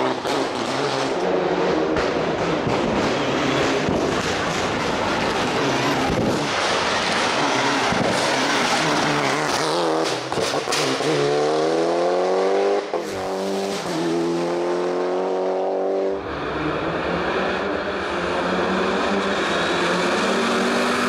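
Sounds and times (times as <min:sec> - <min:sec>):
rally car engine at full throttle: 0:00.0 - 0:21.0.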